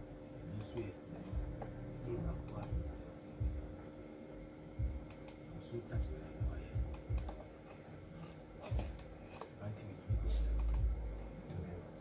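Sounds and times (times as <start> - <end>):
loud low rumble: 1.3 - 3.8, 10.0 - 11.9
light typing clicks: 2.4 - 2.8, 5.0 - 5.4, 6.9 - 7.4, 10.5 - 10.9.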